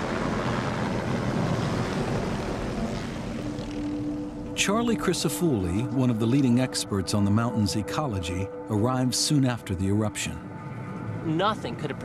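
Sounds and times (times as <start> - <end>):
rotor downwash rushing noise: 0.0 - 4.4
helicopter rotor beat: 0.0 - 6.6.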